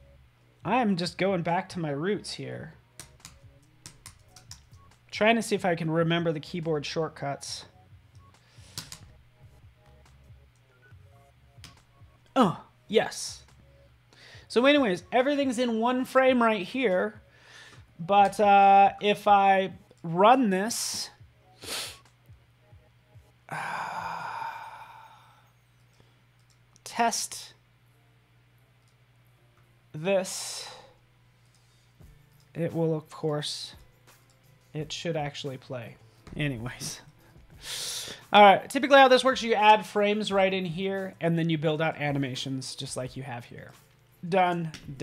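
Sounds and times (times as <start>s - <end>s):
faint background music: 0.0s - 45.0s
man's breathy sigh: 23.5s - 25.5s.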